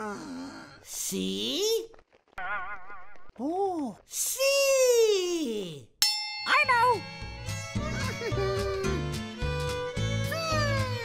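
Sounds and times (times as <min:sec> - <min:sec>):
bell-like ding: 0:06.0 - 0:07.8
children's music with bass line: 0:06.7 - 0:11.0.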